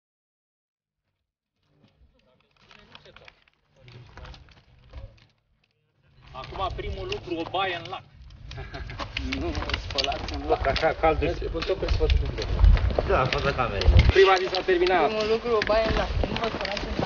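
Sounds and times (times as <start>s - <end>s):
poles and boots clicking on rock: 1.6s - 17.0s
people talking over one another: 6.1s - 17.0s
wind rumble on microphone: 8.2s - 14.8s, 15.4s - 17.0s.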